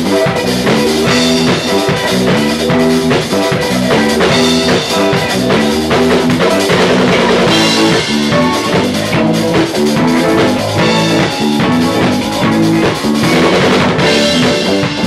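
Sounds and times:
band playing live: 0.0s - 15.0s
regular drum beat: 0.0s - 15.0s.

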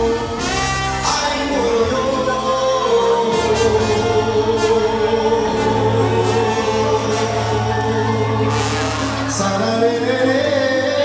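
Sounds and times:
latin band playing: 0.0s - 11.0s
steady bass: 0.0s - 11.0s.

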